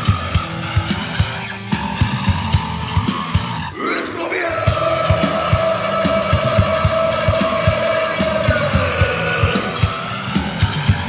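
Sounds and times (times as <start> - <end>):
steady drum hits: 4.6 - 11.0.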